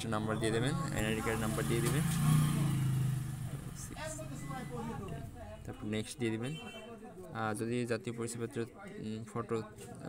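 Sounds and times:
vehicle engine droning: 0:00.1 - 0:05.3.

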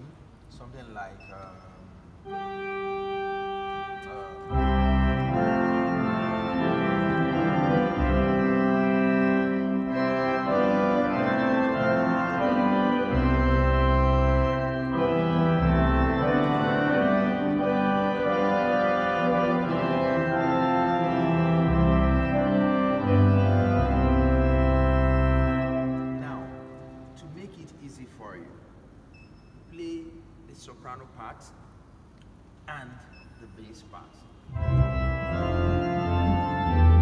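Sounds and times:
church organ chords: 0:01.4 - 0:28.6, 0:34.4 - 0:37.0
deep organ pedal bass notes: 0:01.5 - 0:27.4, 0:34.5 - 0:37.0.

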